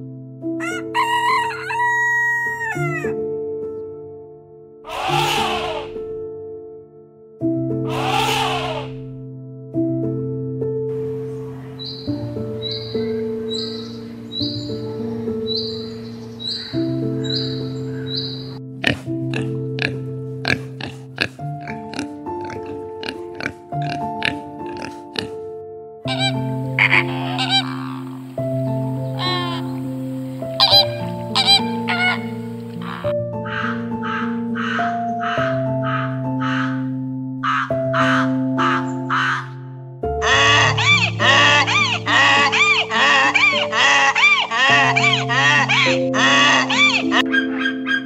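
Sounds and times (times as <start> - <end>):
soft piano music: 0.0 - 48.0
short repeated animal calls: 4.9 - 6.0, 7.9 - 9.0
pig grunting and snuffling: 18.8 - 25.4.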